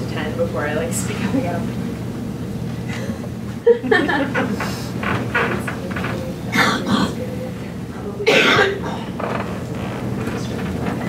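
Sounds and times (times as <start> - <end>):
steady low hum: 0.0 - 11.0
person coughing: 6.6 - 7.2, 8.3 - 9.1.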